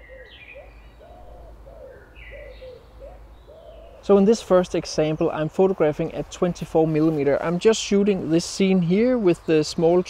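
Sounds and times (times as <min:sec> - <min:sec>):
pigeon cooing: 0:00.0 - 0:04.0
songbird calls: 0:00.0 - 0:05.5.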